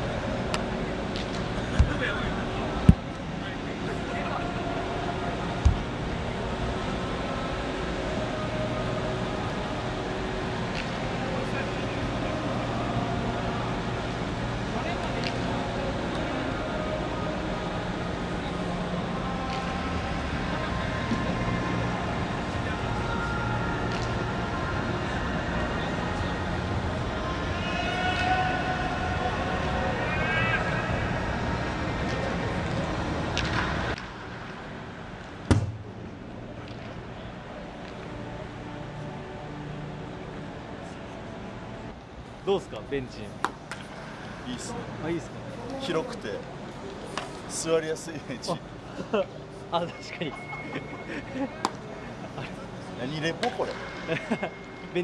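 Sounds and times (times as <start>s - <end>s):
steady hum of a ballpark: 0.0s - 55.0s
sharp thud: 35.5s - 35.8s.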